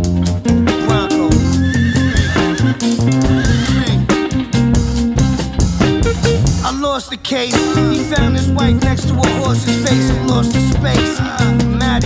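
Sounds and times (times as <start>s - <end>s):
hip-hop instrumental on guitar bass drums: 0.0s - 12.0s
high wavering guitar note: 0.8s - 10.4s.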